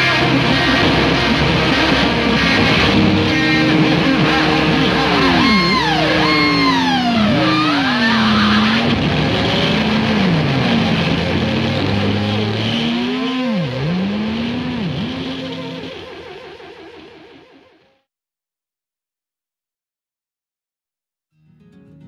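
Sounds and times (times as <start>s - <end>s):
loud rock backing: 0.0s - 16.3s
electric guitar pitch dives: 0.0s - 17.8s.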